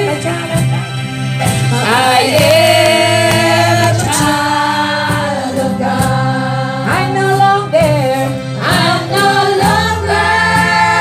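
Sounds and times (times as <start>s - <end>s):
women singing in harmony: 1.7s - 11.0s.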